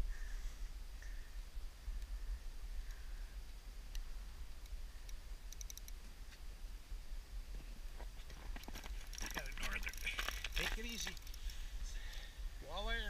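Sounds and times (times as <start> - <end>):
fishing reel clicking and ratcheting: 5.5 - 6.0, 9.1 - 11.6.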